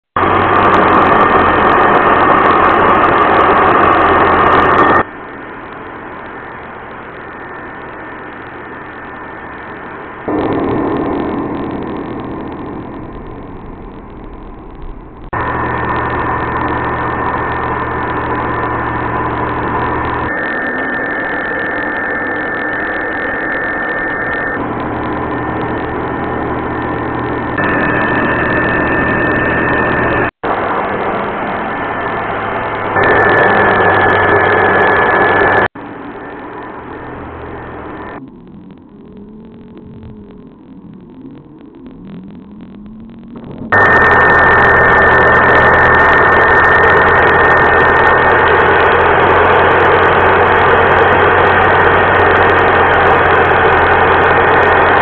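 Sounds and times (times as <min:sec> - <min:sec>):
router spindle whine: 0:00.2 - 0:55.0
end mill cutting wood board: 0:15.3 - 0:35.7.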